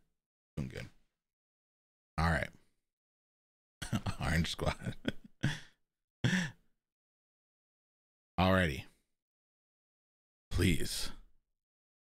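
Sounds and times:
man laughing softly: 0:03.8 - 0:06.6.

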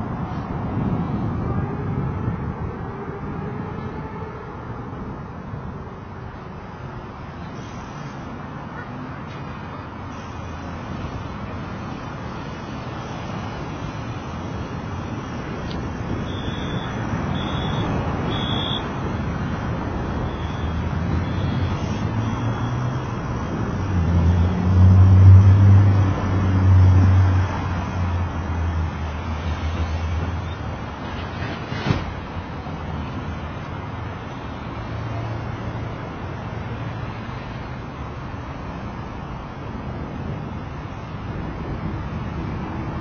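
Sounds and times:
city street traffic: 0:00.0 - 0:43.0
heavy vehicle engine hum: 0:00.0 - 0:43.0.

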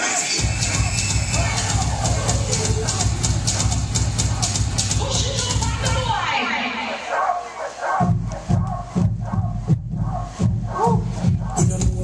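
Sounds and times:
high yelping vocal sounds: 0:00.4 - 0:11.8.

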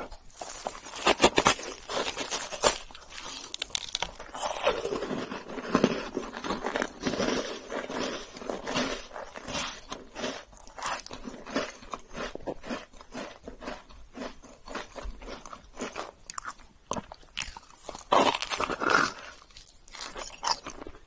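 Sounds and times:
crunchy chewing of a cookie: 0:00.0 - 0:21.0.

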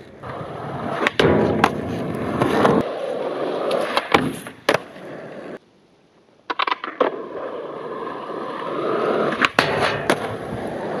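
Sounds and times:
skateboard wheels rolling on asphalt: 0:00.0 - 0:11.0
skateboard clacking on ground: 0:00.1 - 0:05.6, 0:06.4 - 0:11.0.

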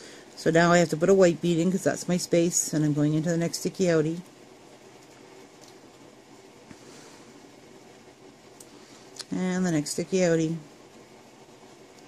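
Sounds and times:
room-tone hiss: 0:00.0 - 0:12.0.

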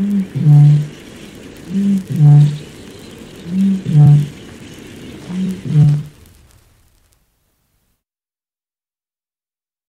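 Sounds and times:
bittern booming: 0:03.5 - 0:04.3, 0:05.3 - 0:06.1.

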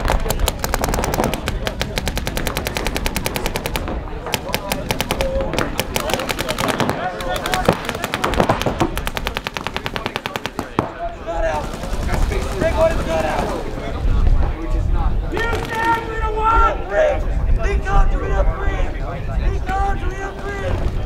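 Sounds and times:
paintball guns firing rapidly: 0:00.0 - 0:13.9, 0:15.4 - 0:16.1.

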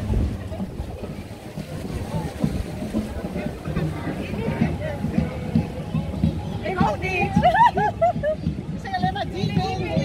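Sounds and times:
faint voices: 0:00.0 - 0:10.0
wind buffeting microphone: 0:00.0 - 0:10.0.

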